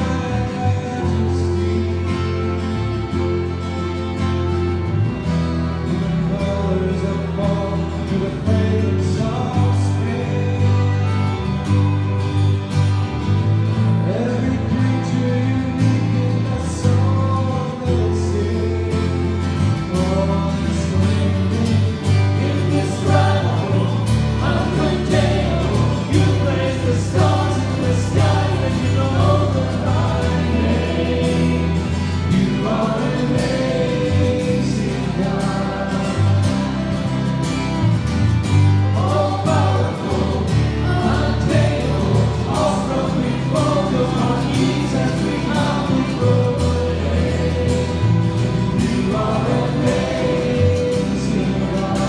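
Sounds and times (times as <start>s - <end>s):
sustained bass notes: 0.0s - 52.0s
church choir singing a hymn: 14.1s - 37.6s, 38.7s - 52.0s
instrumental accompaniment: 17.1s - 52.0s.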